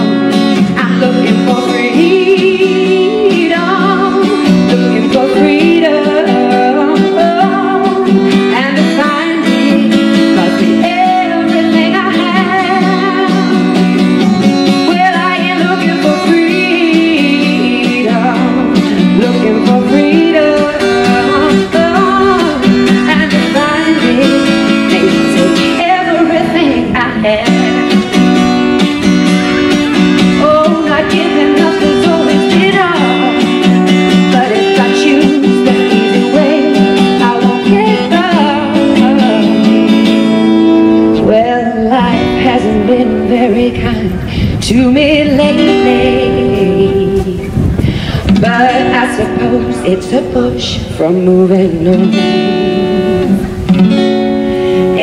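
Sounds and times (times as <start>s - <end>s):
electro-acoustic guitar lead: 0.0s - 55.0s.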